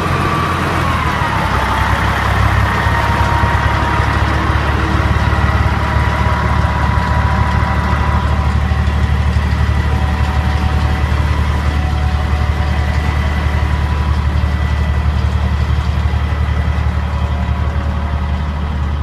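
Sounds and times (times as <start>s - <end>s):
engine droning at idle: 0.0s - 19.0s.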